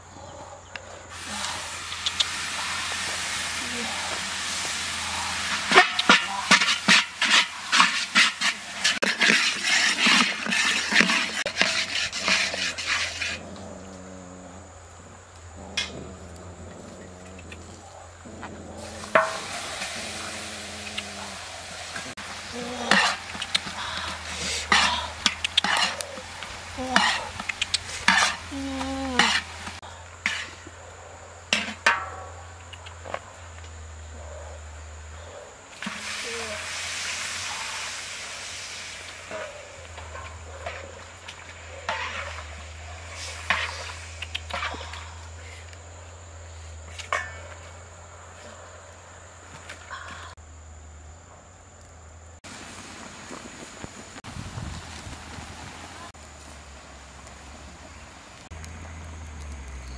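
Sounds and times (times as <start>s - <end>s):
meat sizzling in a wok: 1.1s - 13.3s, 18.8s - 30.4s, 35.8s - 40.8s
ladle clinking and scraping wok: 1.5s - 13.4s, 18.8s - 30.6s, 41.9s - 44.9s.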